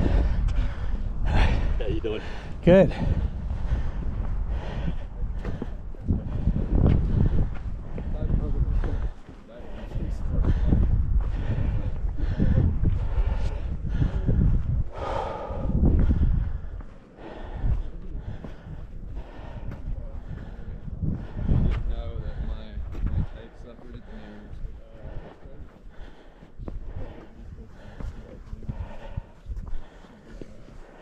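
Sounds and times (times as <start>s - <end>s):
low indistinct voices: 0.0s - 31.0s
wind buffeting microphone: 0.0s - 31.0s.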